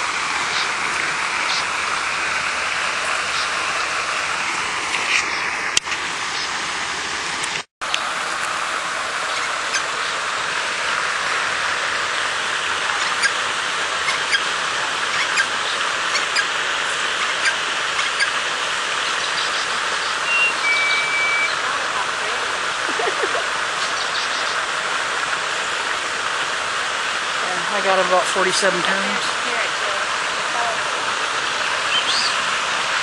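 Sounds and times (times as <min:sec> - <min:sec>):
water rushing: 0:00.0 - 0:33.0
faint bird chirps: 0:19.2 - 0:21.6
high whistle: 0:20.2 - 0:21.6.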